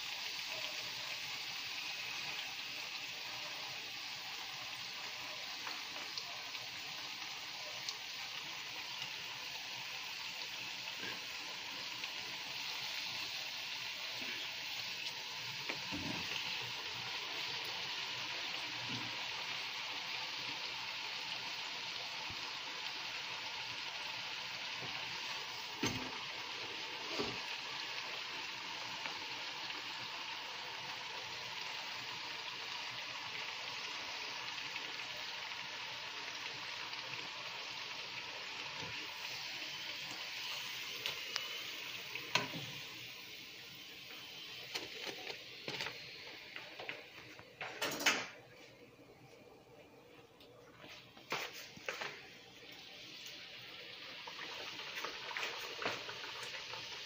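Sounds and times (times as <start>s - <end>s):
dough sizzling in hot oil: 0.0s - 48.4s, 50.7s - 57.0s.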